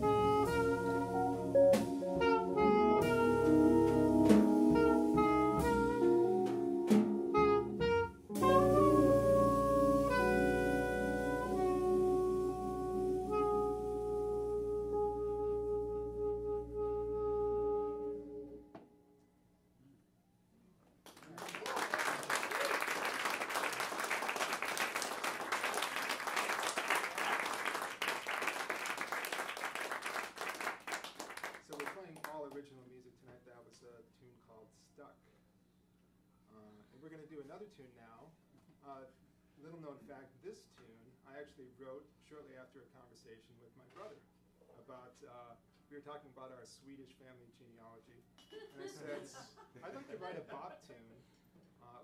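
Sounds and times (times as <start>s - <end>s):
jazz band final chord: 0.0s - 18.7s
saxophone notes: 0.0s - 19.1s
audience applauding: 21.1s - 32.3s.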